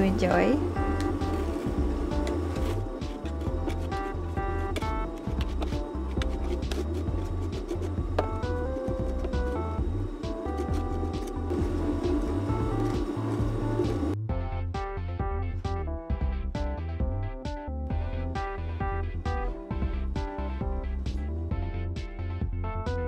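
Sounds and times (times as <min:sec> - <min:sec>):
background music with bass line: 0:00.0 - 0:23.0.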